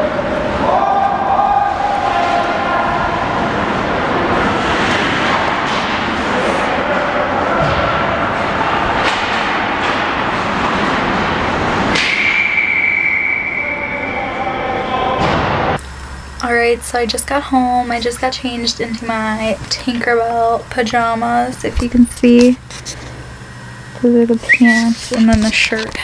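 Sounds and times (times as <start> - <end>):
crowd voices at ice rink: 0.0 - 15.8, 16.4 - 26.0
hockey sticks and puck clacking: 4.2 - 7.0, 7.6 - 12.8
steady high tone: 12.1 - 15.2.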